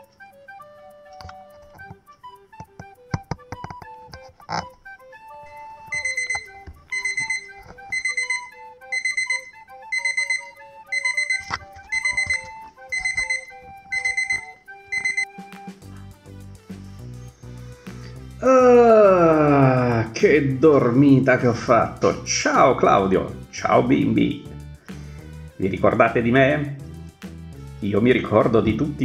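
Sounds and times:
gentle melodic background music: 0:00.0 - 0:29.0
alarm clock beeping: 0:05.5 - 0:15.5.

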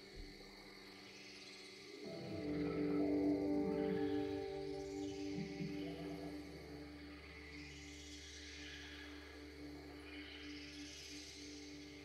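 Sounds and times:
ambient electronic music: 0:00.0 - 0:12.0.

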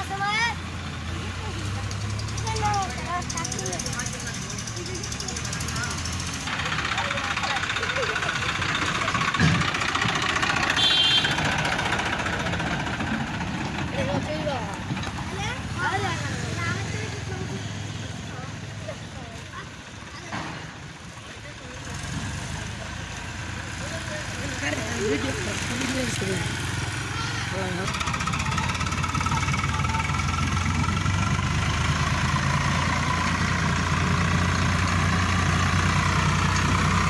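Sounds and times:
tractor diesel engine running: 0:00.0 - 0:37.0
people calling out: 0:24.6 - 0:31.1.

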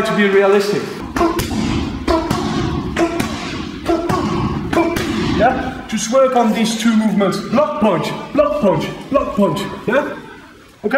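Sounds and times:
hands slapping a striking pad: 0:01.1 - 0:05.6.

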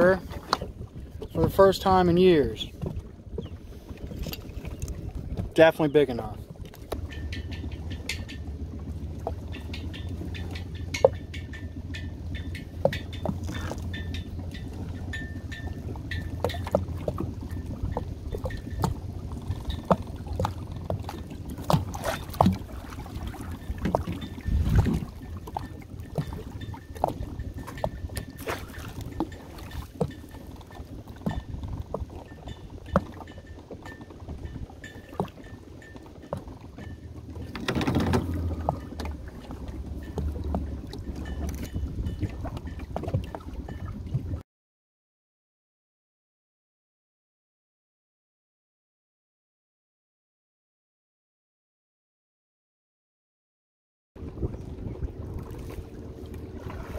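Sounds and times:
low rumble: 0:06.2 - 0:34.6, 0:36.6 - 0:44.4
water splashing and dripping: 0:06.2 - 0:44.3
line puller clicking and clinking: 0:36.8 - 0:39.1.

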